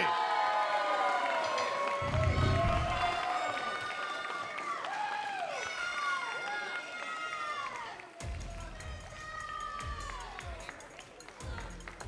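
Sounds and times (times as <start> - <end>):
crowd cheering and whooping: 0.0 - 12.0
low thumps: 2.0 - 3.2
music in an arena: 7.4 - 12.0.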